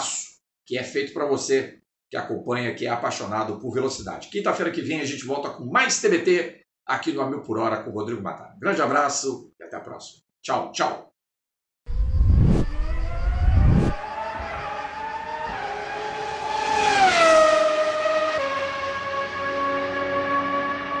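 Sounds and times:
race car passing by: 12.1 - 21.0
race car engine revving: 12.4 - 21.0.

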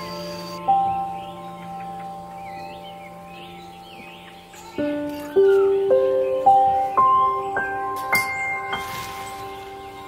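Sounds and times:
birds chirping: 0.0 - 10.0
soft ambient music: 0.0 - 10.0.

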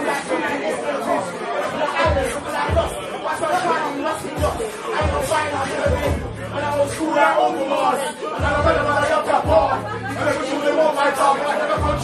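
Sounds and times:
hip-hop backing track: 0.0 - 12.0
person rapping into a microphone: 0.0 - 12.0.

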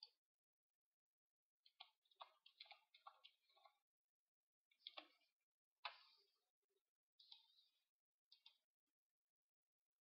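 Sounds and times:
keyboard and mouse clicks: 0.0 - 0.2, 1.6 - 3.9, 4.7 - 6.3, 7.2 - 8.8.

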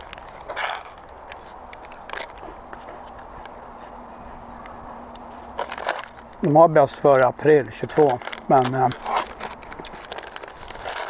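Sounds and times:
chewing dry cracker: 0.0 - 11.0.

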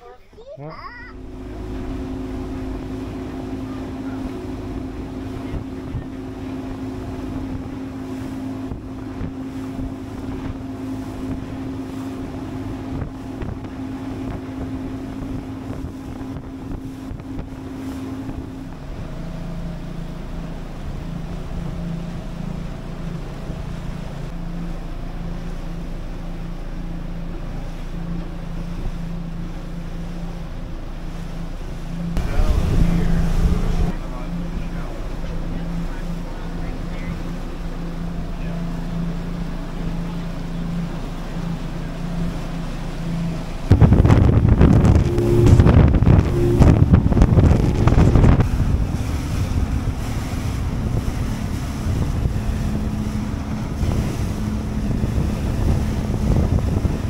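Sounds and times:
motorboat engine droning: 0.0 - 57.0
water rushing past hull: 0.0 - 57.0
wind buffeting microphone: 1.2 - 24.4, 32.1 - 34.8, 42.2 - 57.0.

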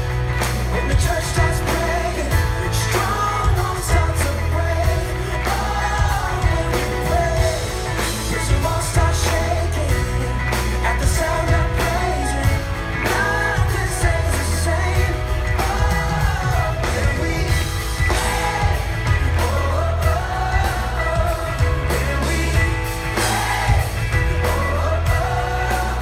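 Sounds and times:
lead singer singing: 0.0 - 26.0
live pop-rock band: 0.0 - 26.0.

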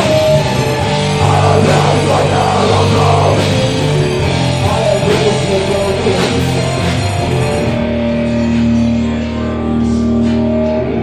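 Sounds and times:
drum kit: 0.0 - 8.8
bass guitar: 0.0 - 11.0
distorted electric guitars: 0.0 - 11.0.

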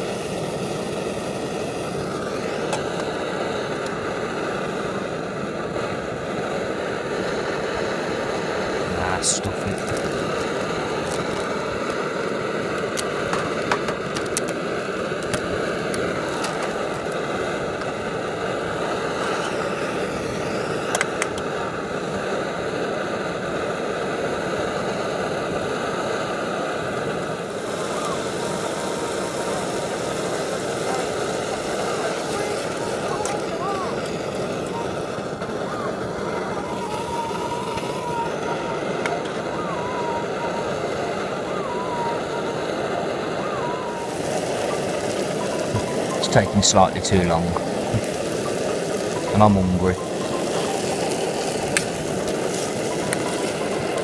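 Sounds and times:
camping stove burning: 0.0 - 54.0.

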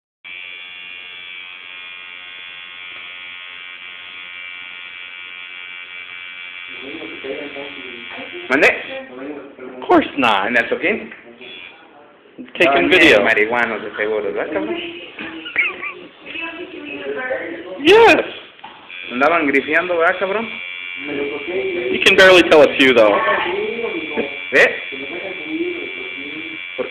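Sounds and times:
tattoo machine buzzing: 0.3 - 8.9, 11.5 - 11.8, 18.6 - 26.9
voices talking: 11.0 - 26.9.

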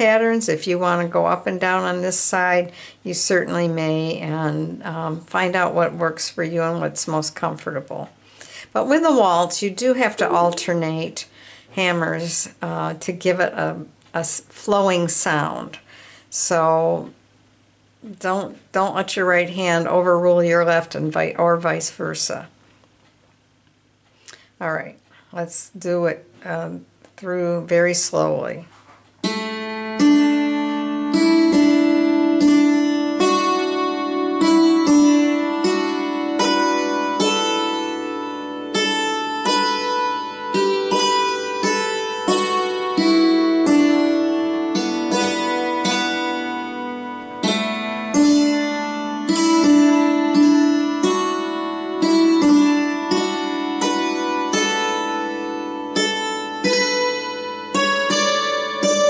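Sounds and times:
hammered dulcimer waltz: 29.2 - 59.0.

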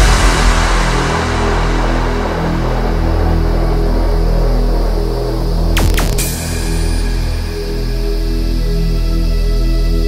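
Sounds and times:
low bass notes: 2.2 - 9.2.

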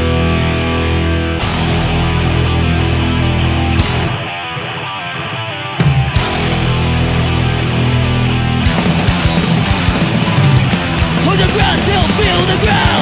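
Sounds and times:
distorted electric guitars: 0.0 - 13.0
thrash hardcore band playing: 0.0 - 13.0
busy drumming: 5.8 - 13.0.

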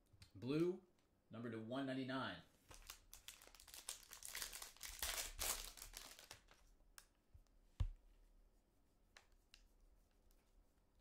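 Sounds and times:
foil wrapper crinkling and tearing: 2.7 - 6.6.

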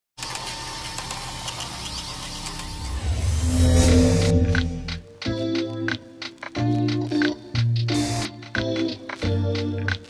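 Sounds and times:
deep rumble: 2.5 - 5.2.

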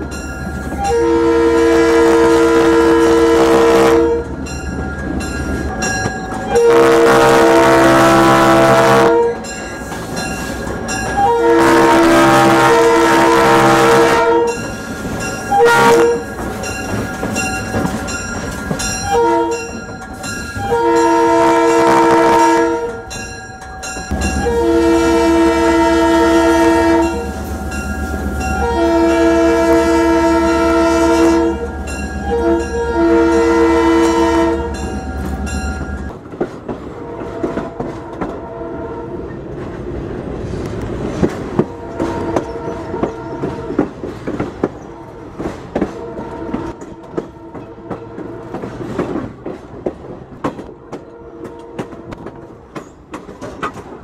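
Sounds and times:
locomotive air horn blasts: 0.8 - 4.4, 6.5 - 9.5, 11.2 - 14.7, 15.5 - 16.4, 19.0 - 19.8, 20.6 - 23.2, 24.1 - 35.0, 37.0 - 39.3, 41.6 - 43.9, 45.0 - 48.7, 50.8 - 52.3.

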